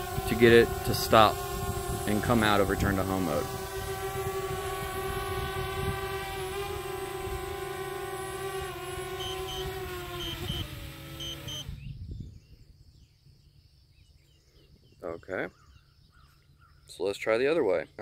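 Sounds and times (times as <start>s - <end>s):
drone propellers whining: 0.0s - 12.1s
short electronic beeps: 11.2s - 11.7s.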